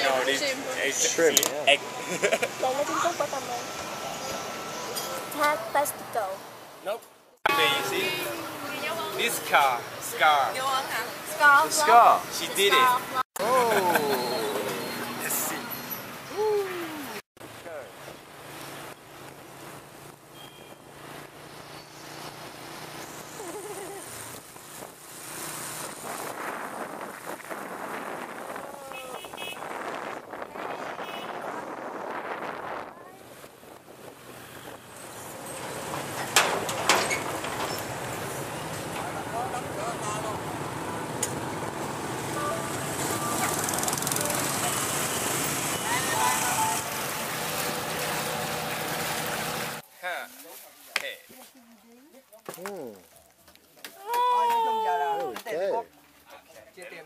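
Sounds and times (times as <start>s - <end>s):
vehicle engines din: 0.0s - 49.8s
traffic: 0.0s - 57.0s
wind rushing over microphone: 24.2s - 35.4s
scooter engine running: 41.5s - 49.6s.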